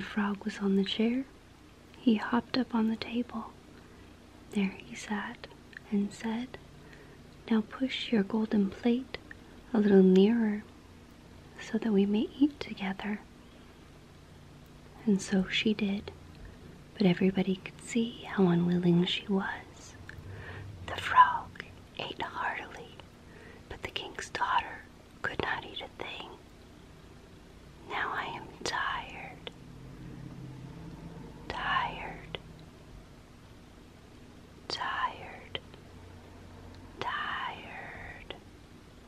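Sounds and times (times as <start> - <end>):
woman whispering: 2.0 - 3.6, 4.5 - 6.6, 7.5 - 10.6, 11.6 - 13.3, 17.0 - 20.2, 20.9 - 23.0, 23.7 - 26.4, 27.8 - 29.6, 31.4 - 32.4, 34.7 - 35.7, 37.0 - 38.4.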